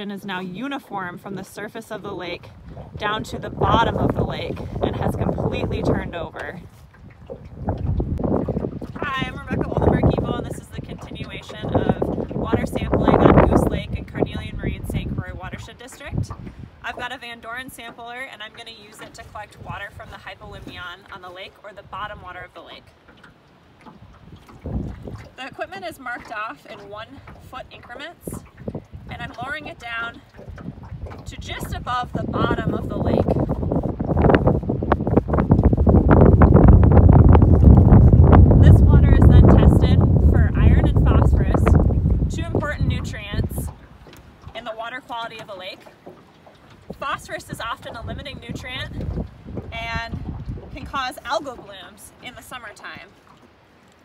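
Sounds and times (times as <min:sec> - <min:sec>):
wind buffeting microphone: 0:00.0 - 0:53.5.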